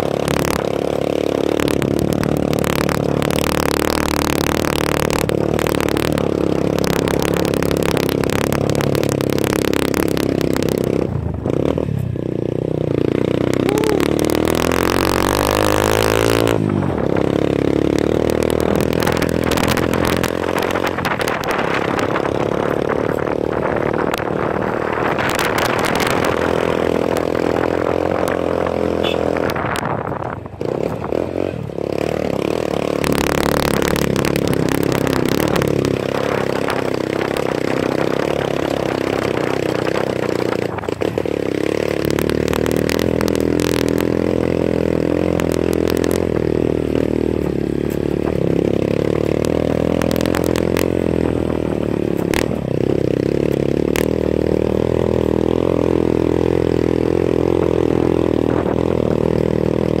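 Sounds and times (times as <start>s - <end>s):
motorcycle clattering over rough road: 0.0s - 60.0s
small motorcycle engine running: 0.0s - 60.0s.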